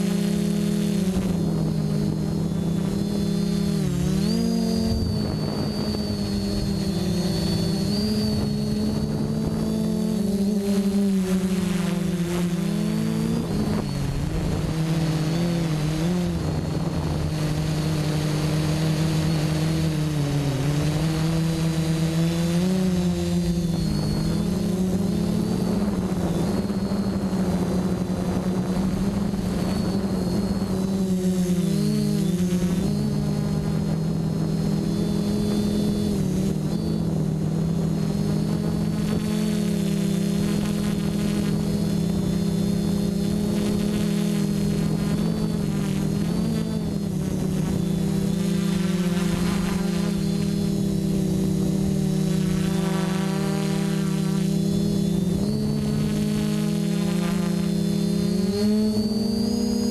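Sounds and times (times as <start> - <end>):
drone motors whining: 0.0 - 59.9.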